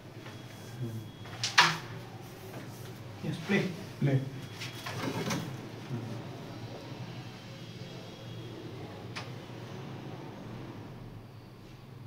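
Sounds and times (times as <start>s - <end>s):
low murmured voices: 5.1s - 11.2s.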